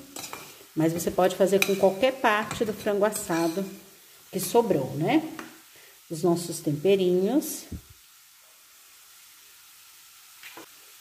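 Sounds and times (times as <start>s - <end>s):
chicken sizzling in a pan: 0.0s - 11.0s.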